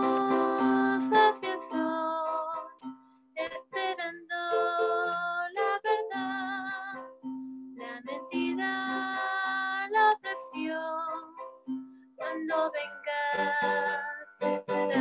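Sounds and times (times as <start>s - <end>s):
girl singing a hymn: 0.0s - 2.6s, 3.4s - 7.0s, 7.8s - 11.4s, 12.2s - 15.0s
instrumental accompaniment: 0.0s - 15.0s.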